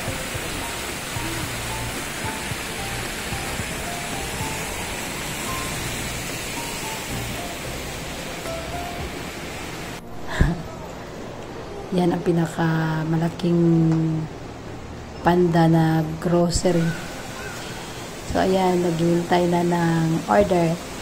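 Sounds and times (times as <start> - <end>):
fountain splashing: 0.0 - 10.0, 16.8 - 21.0
faint music: 0.0 - 21.0.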